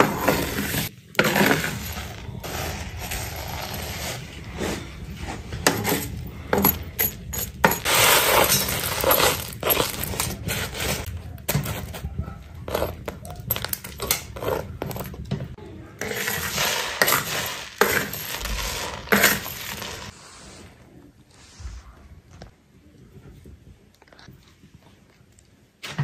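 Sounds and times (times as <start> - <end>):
pebbles clattering: 0.0 - 20.1.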